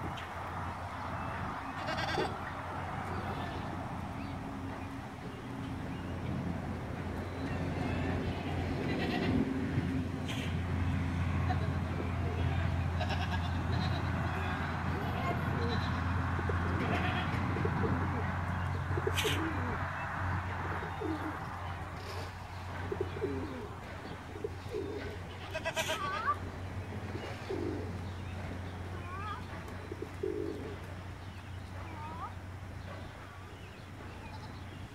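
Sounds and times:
goats bleating: 1.8s - 2.4s, 8.8s - 9.4s, 11.5s - 16.0s, 16.6s - 17.4s, 25.3s - 26.4s
pigeon cooing: 15.5s - 19.9s, 20.6s - 21.4s, 22.0s - 25.2s, 27.1s - 28.0s, 29.9s - 30.8s.

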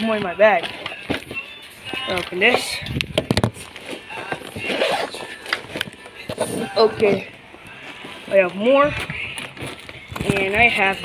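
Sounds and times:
backpack being opened: 3.0s - 7.2s.

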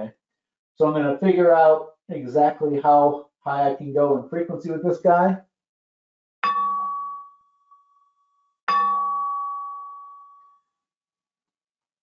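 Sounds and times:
impact hammer striking metal bar: 6.4s - 7.3s, 8.7s - 9.5s
metal bar ringing with bell-like tones: 6.4s - 10.6s.

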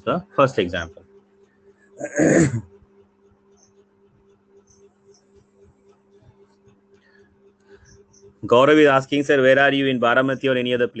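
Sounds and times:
steady low hum: 0.0s - 11.0s
rough vocal sound: 2.0s - 2.6s.

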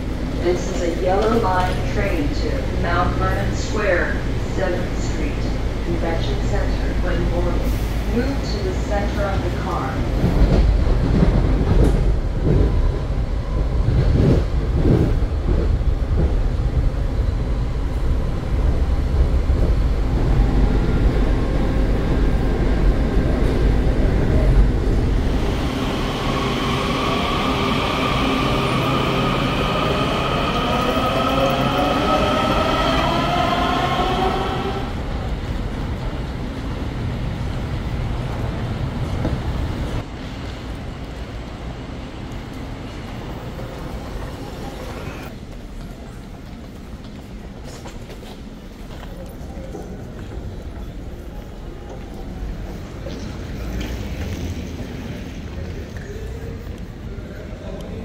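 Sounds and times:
train rumbling with wheel clacks: 0.0s - 58.0s.

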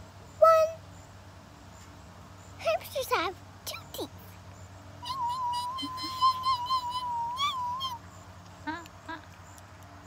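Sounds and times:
girl saying ooh: 5.0s - 8.0s.

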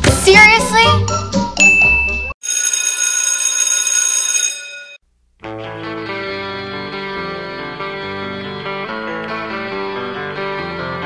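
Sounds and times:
music: 0.0s - 2.4s, 5.4s - 11.0s
electric bell ringing: 1.6s - 5.0s.

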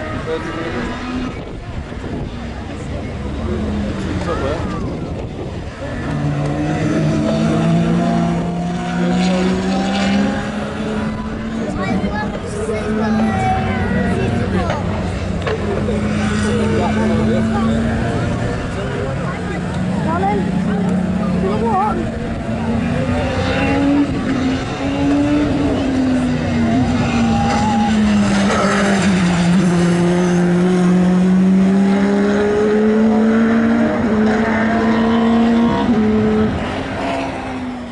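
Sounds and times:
racing car engines: 0.0s - 37.9s.

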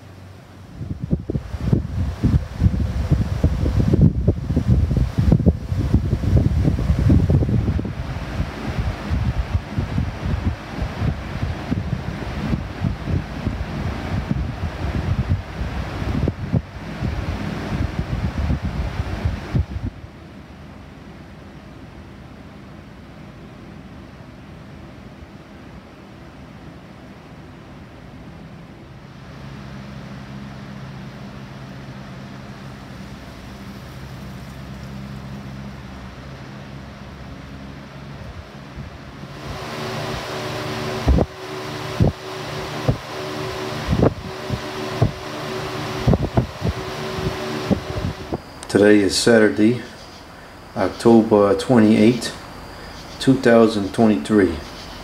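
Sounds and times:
air buffeting microphone: 0.0s - 21.2s, 28.0s - 54.7s
box fans whirring: 0.0s - 55.0s.

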